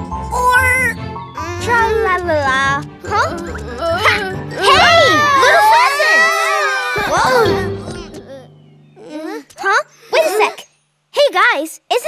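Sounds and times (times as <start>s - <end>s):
high cartoon voices shouting: 3.8s - 7.7s.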